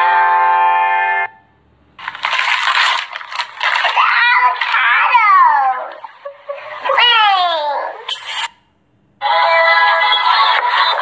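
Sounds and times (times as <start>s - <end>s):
high voiced cry: 3.9s - 8.4s.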